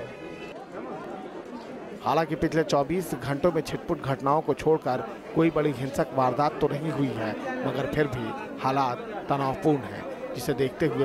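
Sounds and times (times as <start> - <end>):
street crowd chatter: 0.0 - 11.0.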